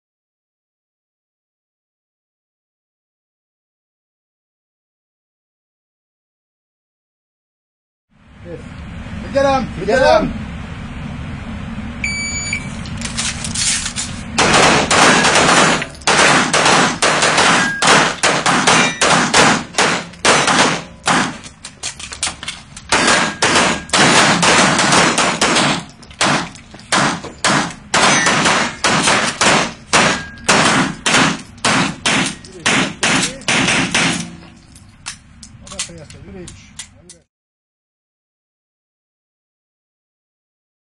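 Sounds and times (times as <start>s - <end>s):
electronic shot-timer beep: 12.0s - 12.8s
rapid pistol shots echoing: 14.4s - 21.4s, 22.9s - 34.4s.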